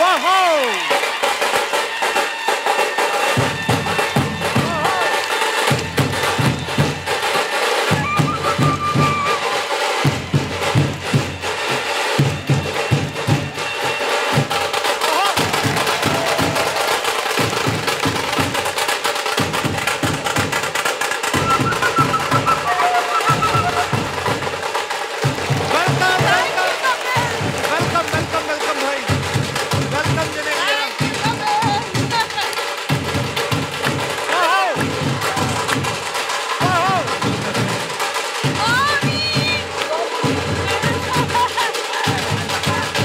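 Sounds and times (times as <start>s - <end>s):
crowd cheering: 0.0s - 43.0s
drums beaten in fast rhythm: 0.0s - 43.0s.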